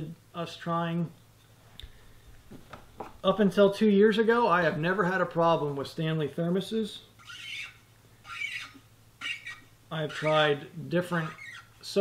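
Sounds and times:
thermos stopper squeaking: 0:07.2 - 0:12.0.

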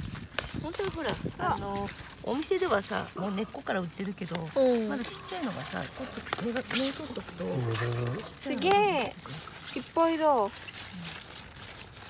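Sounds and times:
rustle of leafy vegetables: 0:00.0 - 0:12.0.

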